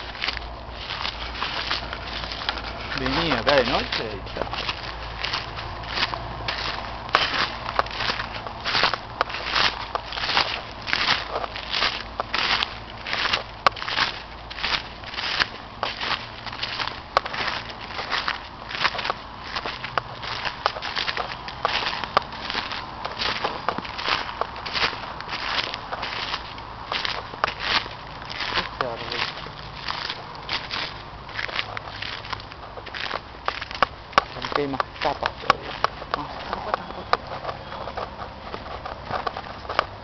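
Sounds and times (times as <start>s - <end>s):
footsteps crunching dry leaves: 0.0s - 40.0s.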